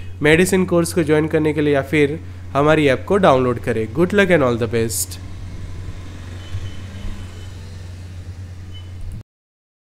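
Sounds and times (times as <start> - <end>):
low background hum: 0.0 - 9.2.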